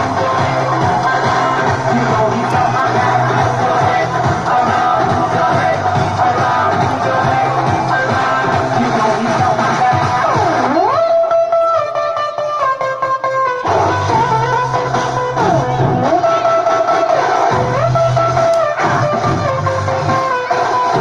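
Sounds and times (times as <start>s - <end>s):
music over loudspeaker: 0.0s - 21.0s.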